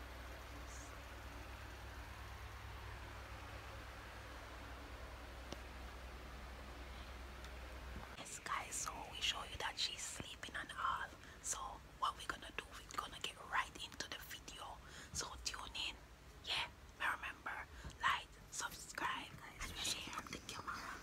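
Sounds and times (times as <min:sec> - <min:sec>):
low hum: 0:00.0 - 0:12.6
person whispering: 0:08.2 - 0:21.0.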